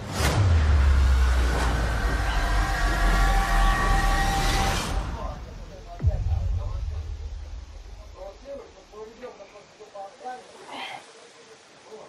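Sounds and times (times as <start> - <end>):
deep steady rumble: 0.3 - 8.9.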